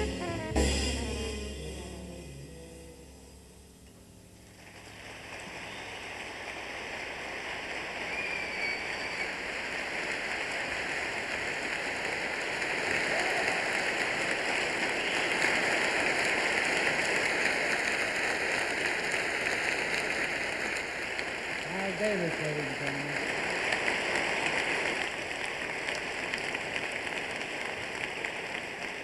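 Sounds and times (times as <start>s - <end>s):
audience applauding: 0.0s - 0.7s, 4.6s - 29.0s
whistle: 8.1s - 9.4s.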